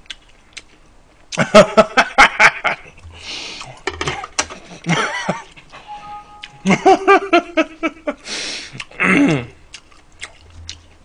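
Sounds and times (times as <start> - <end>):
man laughing loudly: 1.4 - 3.0, 4.1 - 5.6, 6.5 - 8.2
breathy rush of air: 3.1 - 3.8.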